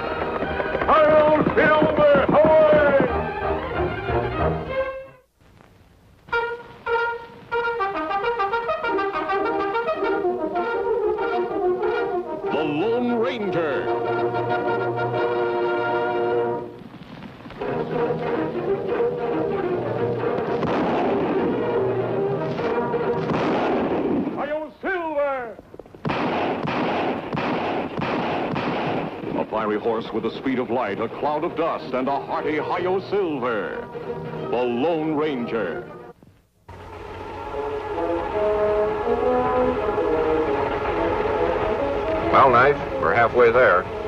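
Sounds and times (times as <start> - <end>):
brass-led orchestral music: 0.0 - 5.3, 6.3 - 16.8, 17.6 - 24.3, 30.8 - 44.0.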